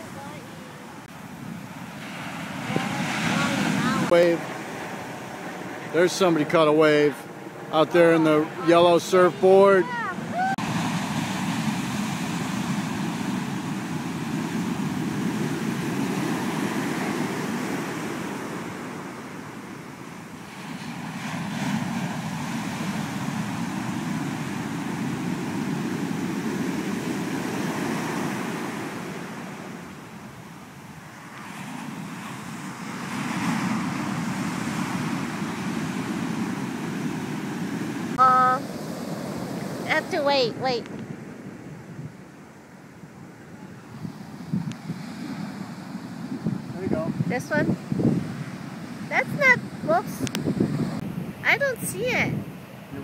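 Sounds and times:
surf breaking on beach: 0.0s - 41.7s.

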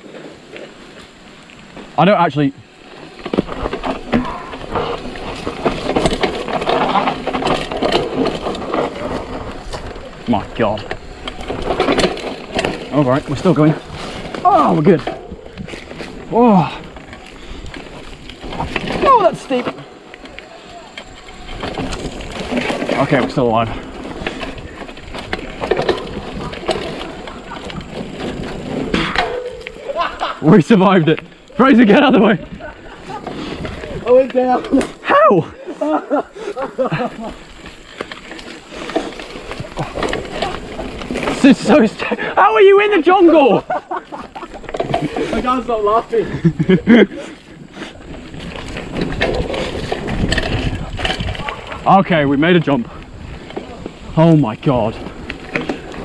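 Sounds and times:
bike clattering: 0.0s - 56.0s
tyres running over dirt: 0.0s - 56.0s.

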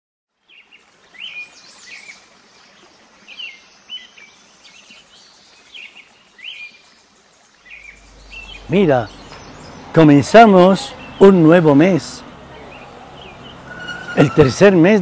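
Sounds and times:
birds chirping: 0.4s - 15.0s.

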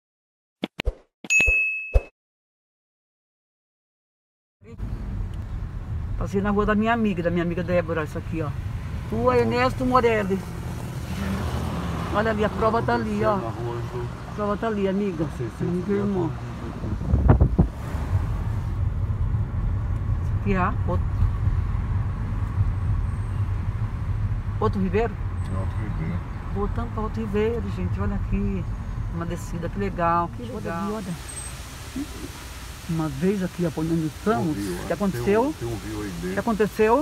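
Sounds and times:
car driving rumble from inside: 4.7s - 37.0s
car cabin rumble: 17.0s - 18.2s.

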